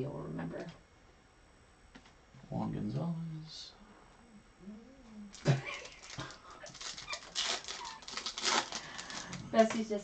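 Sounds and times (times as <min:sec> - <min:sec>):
foil wrapper crinkling and tearing: 0:05.3 - 0:09.7
dog whining: 0:07.0 - 0:08.1.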